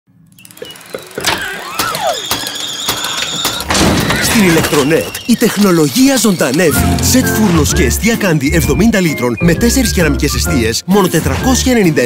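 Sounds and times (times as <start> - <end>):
falling squeaky glides: 0.2 - 7.4
sharp clicks and knocks: 0.3 - 7.2.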